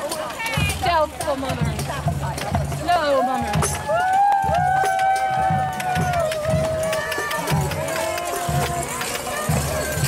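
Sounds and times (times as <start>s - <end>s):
jingling and clicking: 6.0s - 10.0s.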